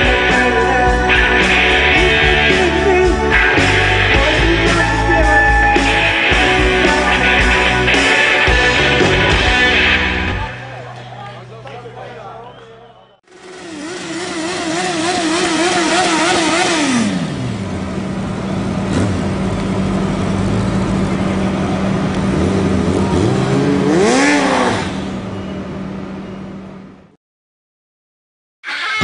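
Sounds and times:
motorcycle engine revving: 0:13.2 - 0:26.2.

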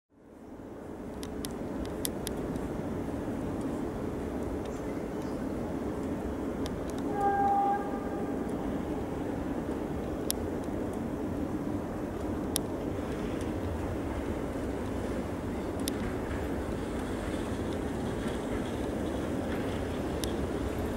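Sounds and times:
trams rumbling on rails: 0:00.2 - 0:20.9
faint sharp clicks: 0:01.1 - 0:02.7, 0:04.4 - 0:07.6, 0:09.6 - 0:11.1, 0:12.1 - 0:13.6, 0:15.7 - 0:16.4, 0:17.6 - 0:20.8
tram horn note: 0:07.0 - 0:08.8.

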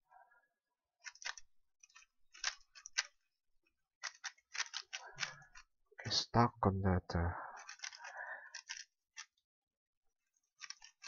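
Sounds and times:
puzzle cube clicking: 0:01.0 - 0:03.2, 0:04.0 - 0:05.6, 0:07.6 - 0:09.4, 0:10.6 - 0:11.0.

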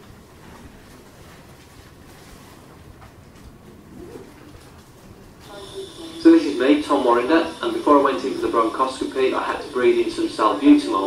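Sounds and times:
faint hum: 0:00.0 - 0:11.0
low room rumble: 0:00.0 - 0:11.0.

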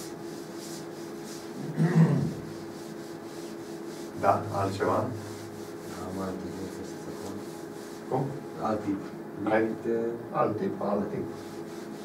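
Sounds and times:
cloth rubbing on chalkboard: 0:00.0 - 0:09.2, 0:11.1 - 0:12.0
room hum: 0:00.0 - 0:12.0.

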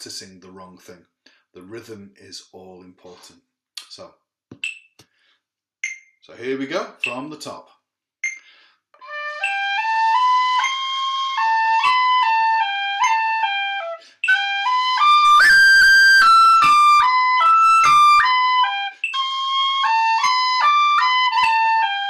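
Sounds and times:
tin whistle playing a jig: 0:09.0 - 0:22.0.

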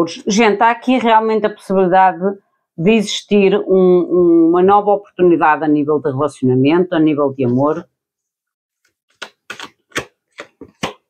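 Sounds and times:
cards being shuffled: 0:08.8 - 0:11.0.

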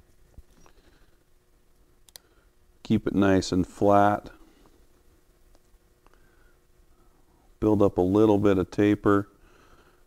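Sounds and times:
faint click: 0:02.1 - 0:02.3.

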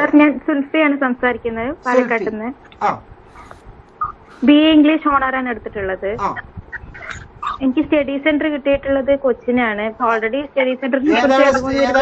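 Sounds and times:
voice over video call: 0:01.3 - 0:08.0, 0:11.0 - 0:12.0.

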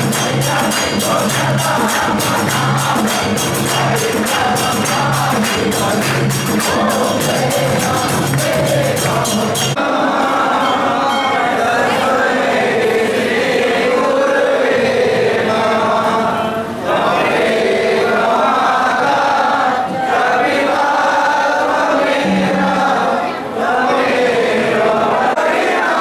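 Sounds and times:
crowd singing a hymn in chorus: 0:00.0 - 0:26.0.

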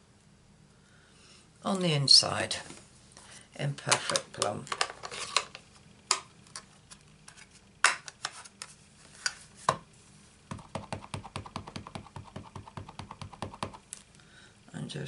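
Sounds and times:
stamp tapping on ink pad: 0:10.5 - 0:13.8.

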